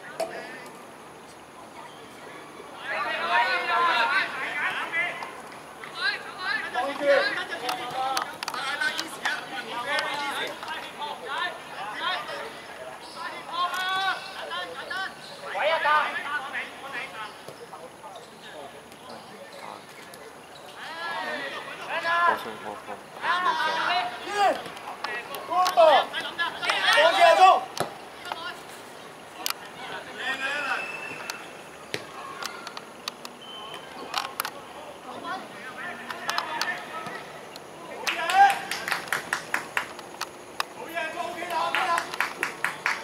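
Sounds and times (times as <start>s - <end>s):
outdoor background noise: 0.0s - 43.0s
distant players calling: 2.6s - 43.0s.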